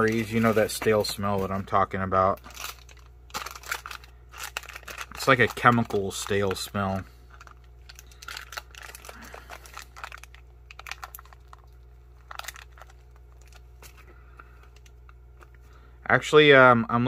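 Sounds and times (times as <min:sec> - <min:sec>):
foil pouch crinkling: 0:00.0 - 0:15.6
steady low hum: 0:00.0 - 0:17.0.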